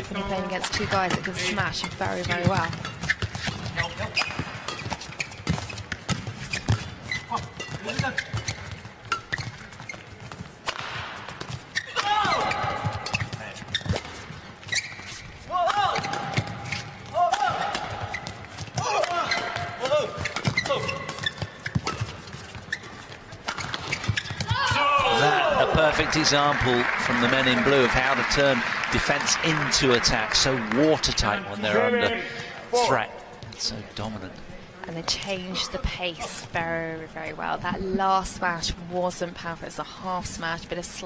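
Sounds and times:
shoes squeaking on court: 0:00.0 - 0:25.3
rackets hitting shuttlecock: 0:10.6 - 0:14.2
players grunting and calling: 0:15.5 - 0:21.2.

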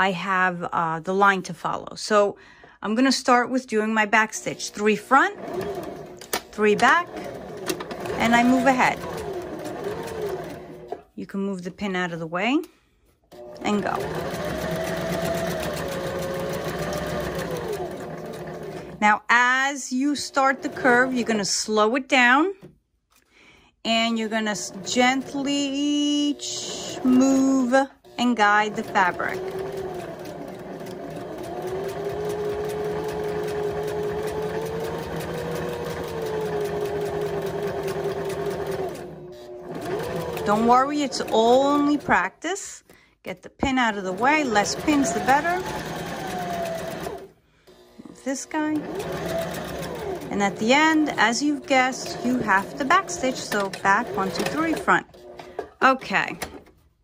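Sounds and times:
sewing machine stitching: 0:04.3 - 0:11.1, 0:13.3 - 0:19.1, 0:20.1 - 0:21.7, 0:24.2 - 0:42.4, 0:43.6 - 0:56.7
sewing machine needle ticking: 0:13.4 - 0:18.8, 0:28.5 - 0:39.0, 0:48.8 - 0:51.2.

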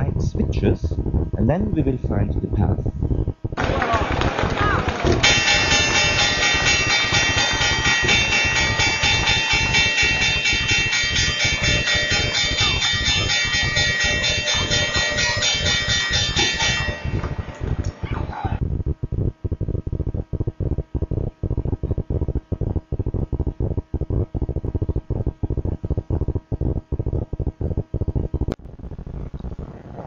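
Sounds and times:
steady low beat: 0:02.7 - 0:29.6
sustained high chord: 0:05.2 - 0:18.1.

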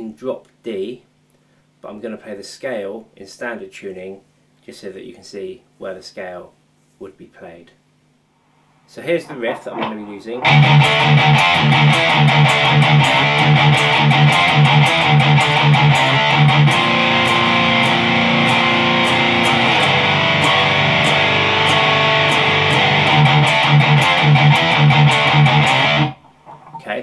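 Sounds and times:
electric guitar heavy metal riff: 0:09.3 - 0:26.7.

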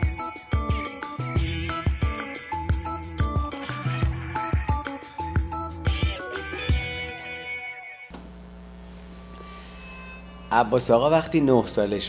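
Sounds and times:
electrical mains hum: 0:08.1 - 0:11.8.

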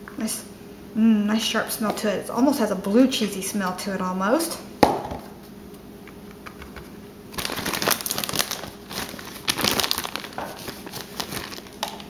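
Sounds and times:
plastic bag crinkling: 0:07.3 - 0:12.0.

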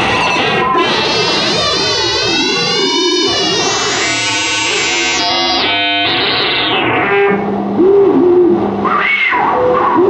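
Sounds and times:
synthesizer tones through speaker: 0:00.0 - 0:10.0.

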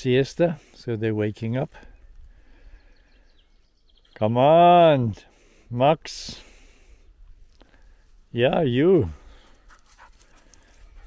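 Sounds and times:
small dog panting: 0:09.3 - 0:11.0.

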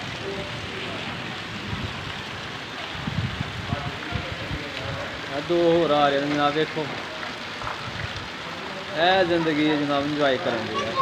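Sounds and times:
rain falling on street: 0:00.0 - 0:11.0.

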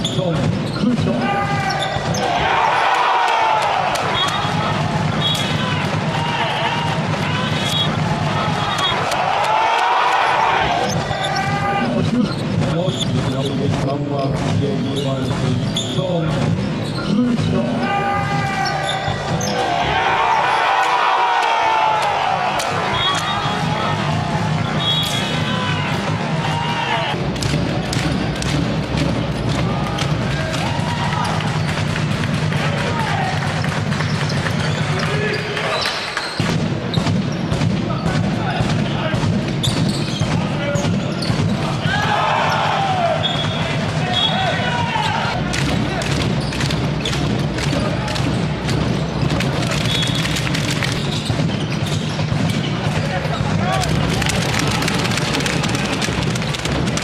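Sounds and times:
voices of players and spectators: 0:00.0 - 0:57.0.

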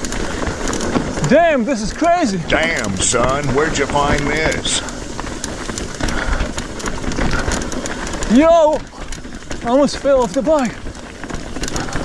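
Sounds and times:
bike rattling over bumps: 0:00.0 - 0:12.0
bike tyres rolling over rock: 0:00.0 - 0:12.0.

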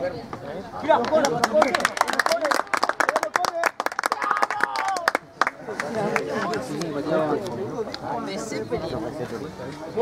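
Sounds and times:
voices: 0:00.0 - 0:10.0
spectators clapping: 0:01.0 - 0:07.0.

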